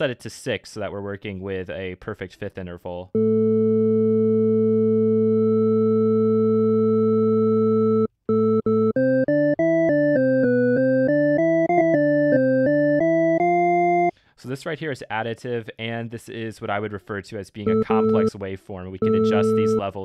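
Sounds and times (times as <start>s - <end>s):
synthesizer notes: 3.2s - 14.1s, 17.7s - 18.3s, 19.0s - 19.8s.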